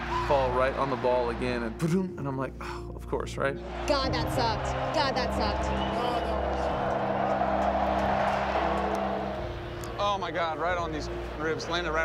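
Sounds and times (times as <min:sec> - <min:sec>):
stadium crowd roaring: 0:03.7 - 0:10.0.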